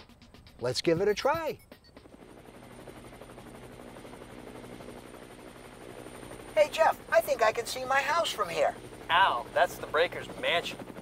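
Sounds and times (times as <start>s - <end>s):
helicopter engine and rotor drone: 0.0s - 11.0s.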